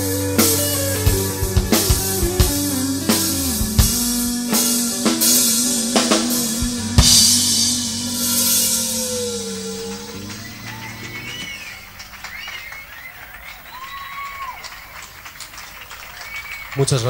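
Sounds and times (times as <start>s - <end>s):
rock band closing chord: 0.0s - 12.6s
faint wavering high tones: 4.4s - 13.0s
drum hit: 5.0s - 10.7s.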